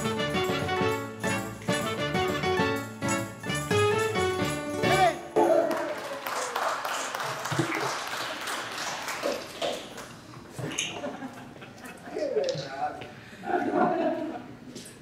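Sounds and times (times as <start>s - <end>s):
people clapping: 4.8s - 10.7s.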